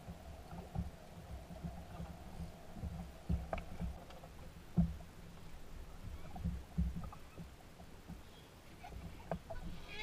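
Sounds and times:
water slapping hull: 0:00.0 - 0:10.0.

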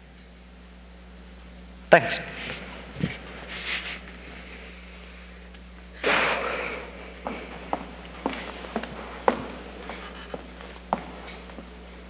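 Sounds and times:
loud sniff-like breath: 0:02.3 - 0:05.4, 0:06.0 - 0:07.7
footsteps on stage floor: 0:06.5 - 0:12.0.

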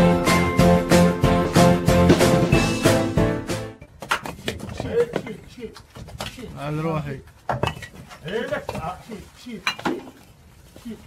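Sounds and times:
bricks clinking and knocking: 0:03.8 - 0:06.6, 0:07.4 - 0:09.0.

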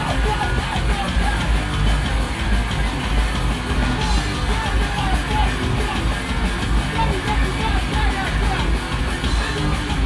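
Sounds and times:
bass guitar: 0:00.0 - 0:10.0
distorted electric guitar: 0:00.0 - 0:10.0
drums: 0:00.0 - 0:10.0.

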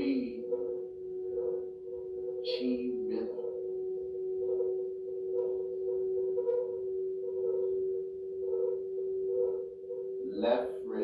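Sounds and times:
electronic humming drone: 0:00.0 - 0:11.0.

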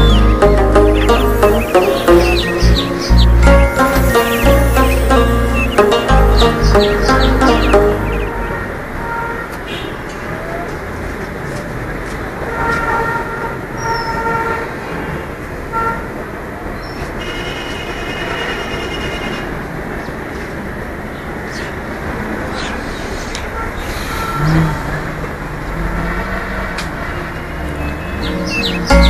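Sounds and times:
background music: 0:00.0 - 0:08.8, 0:28.2 - 0:29.0.

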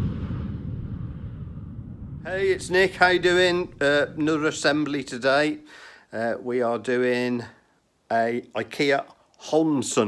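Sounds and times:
low rumbling whoosh: 0:00.0 - 0:04.9.

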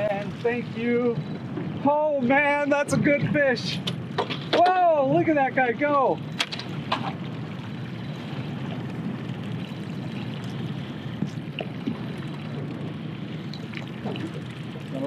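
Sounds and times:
outboard motor running: 0:00.0 - 0:15.0
water washing behind boat: 0:00.0 - 0:15.0.

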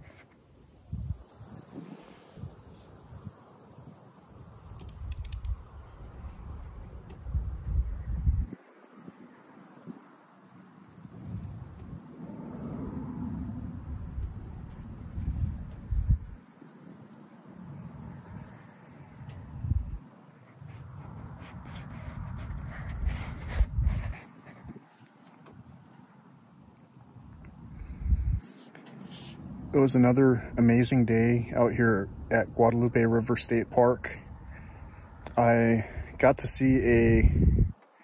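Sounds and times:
wind buffeting microphone: 0:00.8 - 0:16.6, 0:17.6 - 0:24.9, 0:27.5 - 0:28.5, 0:34.2 - 0:37.8.

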